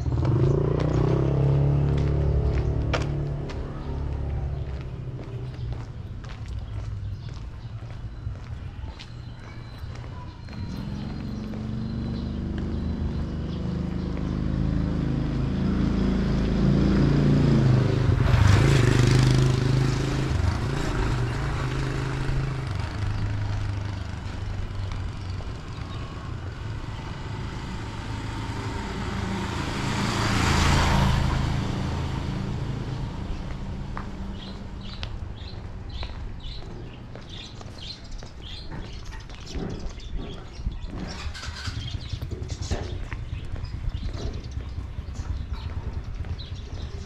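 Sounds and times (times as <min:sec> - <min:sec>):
motorcycle passing: 0:00.0 - 0:08.0, 0:09.7 - 0:47.0
vehicle passing: 0:00.0 - 0:08.2, 0:09.7 - 0:47.0.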